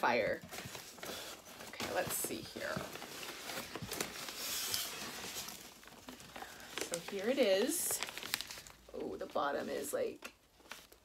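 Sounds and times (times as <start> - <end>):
paper wrapping crinkling: 0.4 - 11.0.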